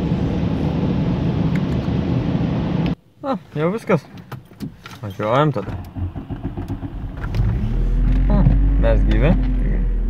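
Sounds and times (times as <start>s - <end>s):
car wash machinery rushing: 5.7s - 10.0s.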